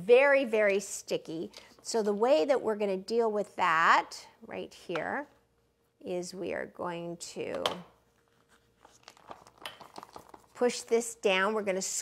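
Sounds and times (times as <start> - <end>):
pastry bag crinkling and clicking: 8.9 - 10.6.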